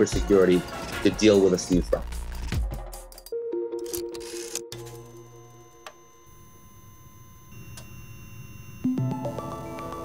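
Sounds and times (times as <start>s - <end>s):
low hum: 4.2s - 9.9s
faint high tones: 4.7s - 10.0s.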